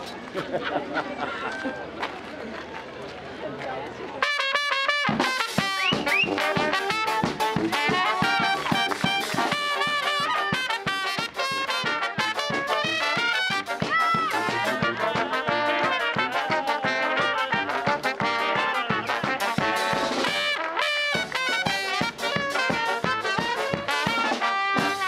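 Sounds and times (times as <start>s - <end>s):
crowd chatter: 0.0s - 25.0s
brass band playing: 4.2s - 25.0s
steady drum beat: 4.9s - 25.0s.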